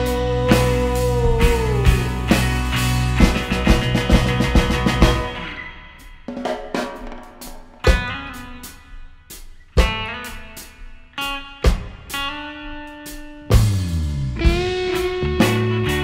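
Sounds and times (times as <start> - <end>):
reggae guitar music: 0.0 - 16.0.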